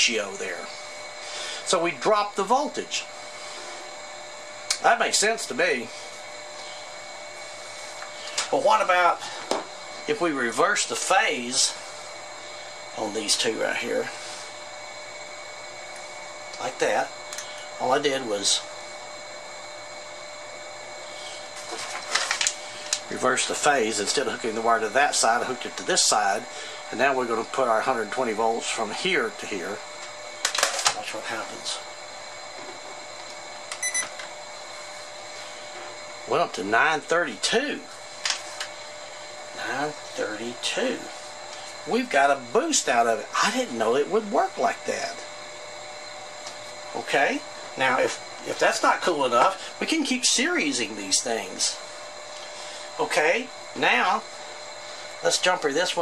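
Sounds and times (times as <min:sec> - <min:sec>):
even hiss: 0:00.0 - 0:19.8, 0:20.9 - 0:33.5, 0:34.3 - 0:56.0
faint steady whine tones: 0:00.0 - 0:56.0.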